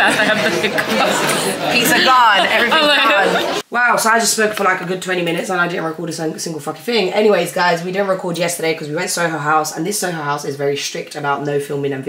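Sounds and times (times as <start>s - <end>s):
laughter: 0.0s - 3.6s
many voices talking: 0.0s - 10.4s.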